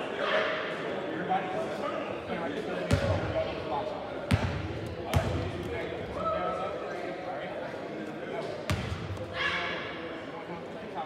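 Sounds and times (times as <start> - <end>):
murmur of crowd chatter: 0.0 - 11.0.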